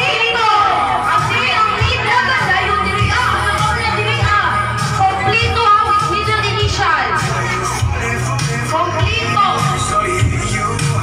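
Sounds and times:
woman calling over loudspeakers: 0.0s - 7.4s, 8.7s - 10.0s
background music: 0.0s - 11.0s
voices in the room: 0.0s - 11.0s.

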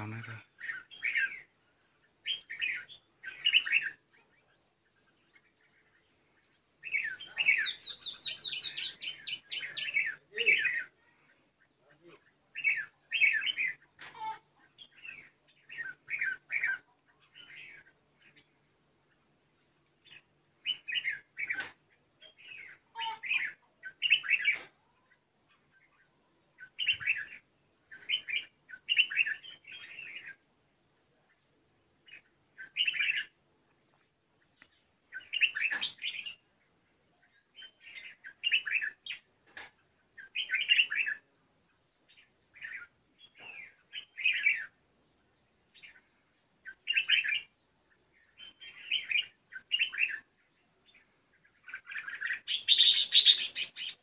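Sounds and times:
bulbul singing: 0.0s - 30.5s, 31.1s - 54.0s.

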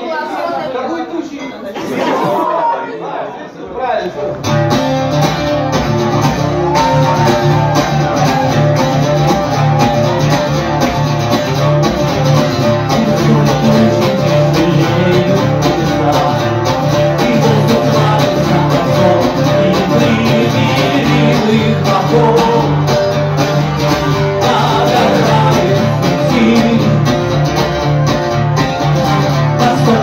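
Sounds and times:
acoustic guitar strumming chords: 4.4s - 30.0s.

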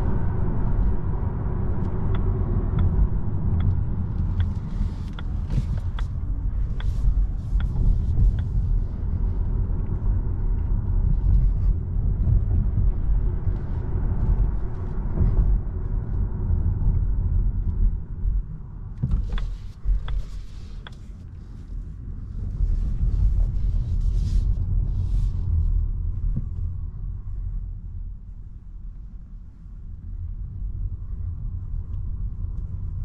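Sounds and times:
tyre and road rumble in car: 0.0s - 33.0s.

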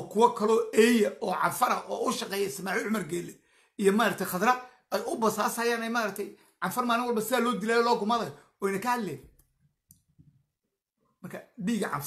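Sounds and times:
man talking: 0.0s - 9.4s, 11.2s - 12.0s.

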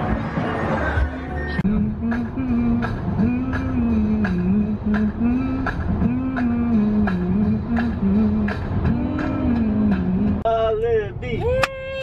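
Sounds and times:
low melody with beats: 0.0s - 10.4s
car road noise: 0.0s - 12.0s.

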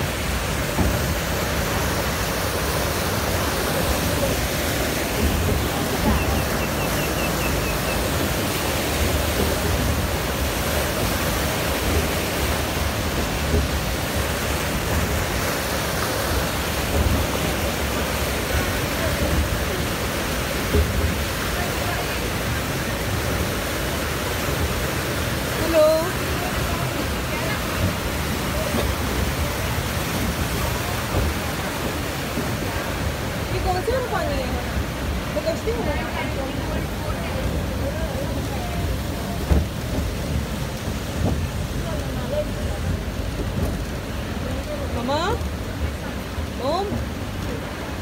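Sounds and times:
water rushing through channel: 0.0s - 48.0s.

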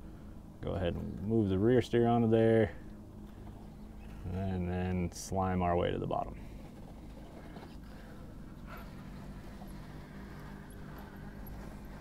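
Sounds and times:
tires clicking on rock: 6.1s - 12.0s
electric motor humming: 6.4s - 12.0s.

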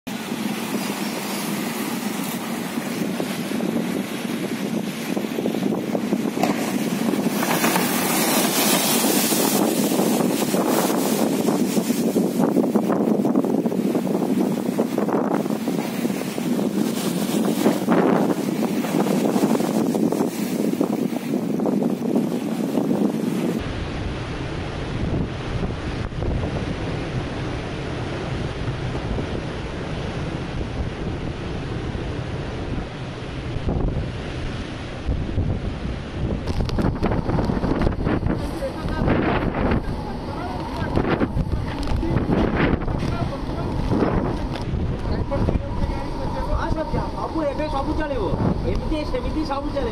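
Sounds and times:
waves crashing against seawall: 0.1s - 49.9s
wind buffeting microphone: 0.1s - 49.9s.

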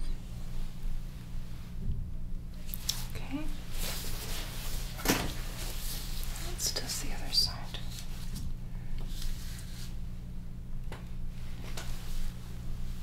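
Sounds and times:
steady low hum: 0.0s - 13.0s
gloves and fabric rustling: 2.7s - 7.1s.

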